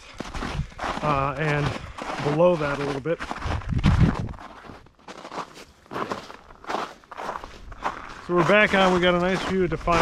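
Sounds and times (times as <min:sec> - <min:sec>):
footsteps crunching on snow: 0:00.0 - 0:10.0.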